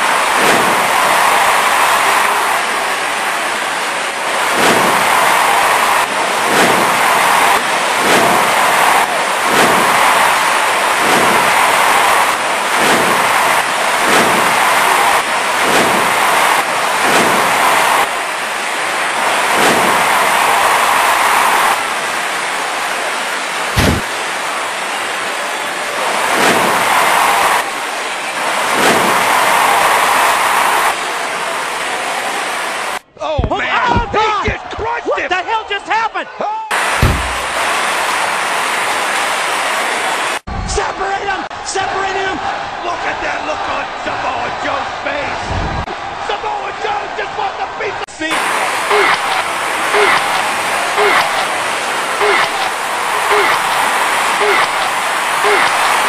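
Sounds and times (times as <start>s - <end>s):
sharp loud crack: 4.5s - 5.5s, 6.4s - 18.1s, 23.8s - 24.1s, 36.9s - 37.7s
bodies thudding on ring mat: 37.0s - 37.5s.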